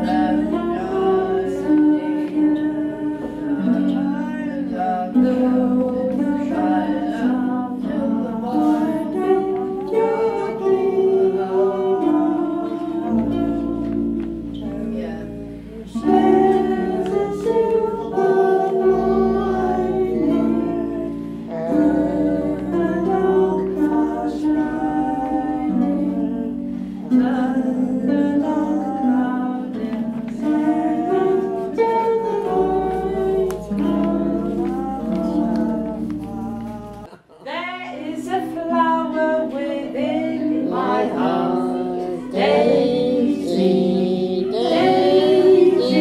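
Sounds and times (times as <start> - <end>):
plucked string accompaniment: 0.0 - 37.1, 38.2 - 46.0
person singing: 0.0 - 46.0.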